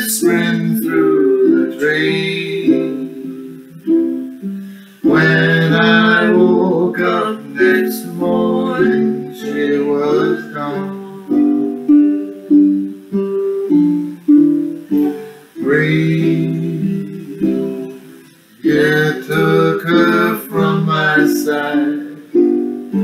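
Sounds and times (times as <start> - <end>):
man singing: 0.0 - 4.0, 5.0 - 12.0, 14.9 - 23.0
ukuleles strummed: 0.0 - 23.0.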